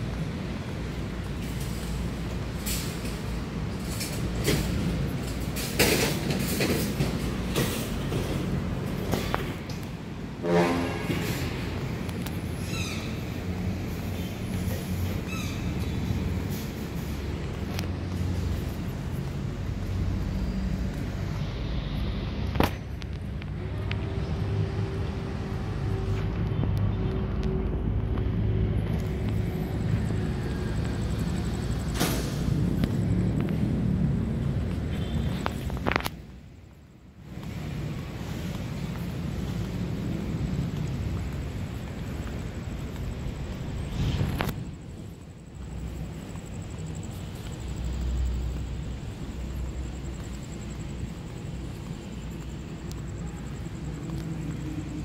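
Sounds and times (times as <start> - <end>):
vehicle rumble: 0.0 - 55.0.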